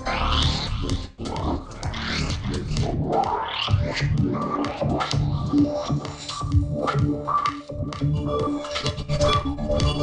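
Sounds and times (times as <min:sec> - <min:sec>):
filtered electronic beat: 0:00.0 - 0:10.0.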